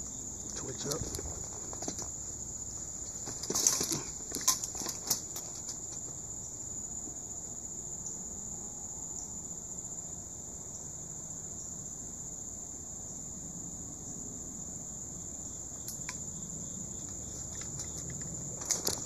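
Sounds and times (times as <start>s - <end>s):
crickets chirping: 0.0s - 19.0s
knocks and rustles climbing gate: 0.5s - 6.2s, 17.0s - 19.0s.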